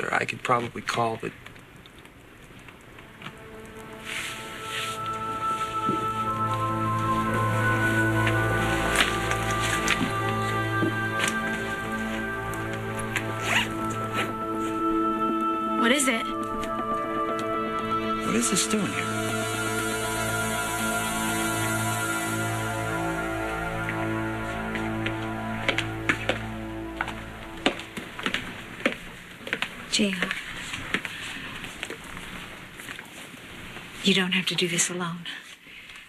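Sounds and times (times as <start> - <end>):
dramatic background music: 2.8 - 29.2
soft soundtrack chords: 2.8 - 29.4
footsteps on hard floor: 3.2 - 7.2, 24.7 - 33.1.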